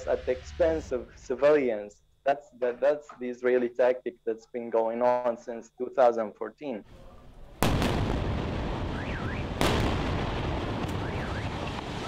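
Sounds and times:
explosion blasts: 7.6s - 12.0s.

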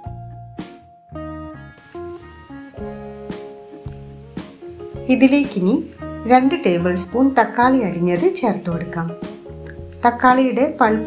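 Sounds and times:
acoustic guitar music: 0.0s - 11.0s.

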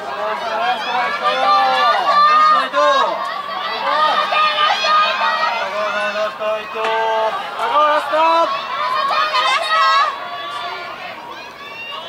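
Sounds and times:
loud shout: 0.0s - 12.0s
spectators calling out: 0.0s - 12.0s.

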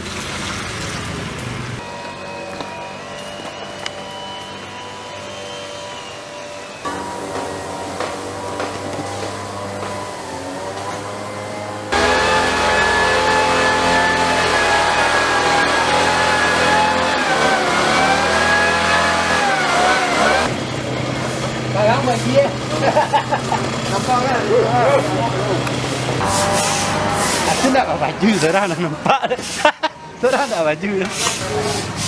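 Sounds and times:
sprayer engine running: 1.8s - 29.6s.

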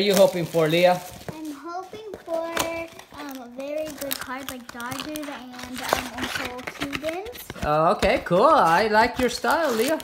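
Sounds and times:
girl speaking softly: 1.3s - 7.6s.

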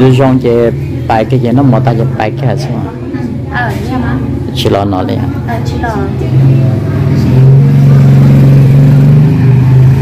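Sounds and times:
engine running: 0.0s - 10.0s.

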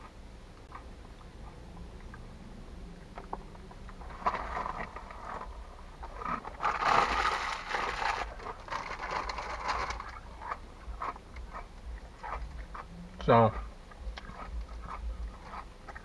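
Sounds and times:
plastic snack bag crinkling: 6.2s - 11.1s.

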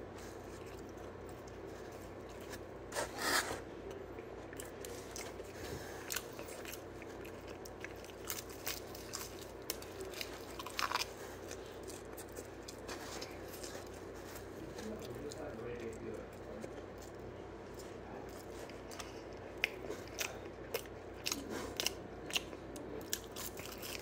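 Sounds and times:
soft chewing: 0.0s - 24.0s
person crunching crisp pizza: 0.1s - 24.0s.

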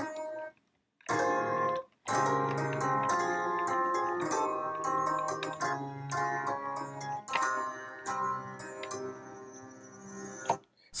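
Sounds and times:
dry piano notes and chords: 0.0s - 10.7s.

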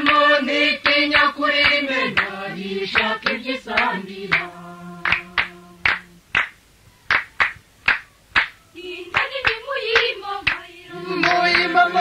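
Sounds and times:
voices singing: 0.0s - 12.0s
sharp hand claps: 0.8s - 2.4s, 3.0s - 10.6s, 11.2s - 11.8s.

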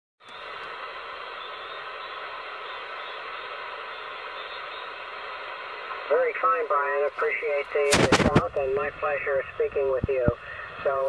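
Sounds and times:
radio static hiss: 0.2s - 11.0s.

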